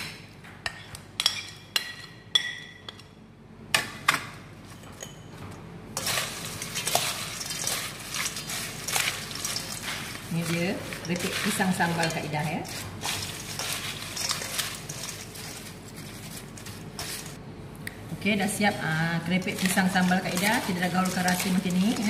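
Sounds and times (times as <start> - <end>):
chips rustling and crackling: 6.0 - 17.4, 19.4 - 22.0.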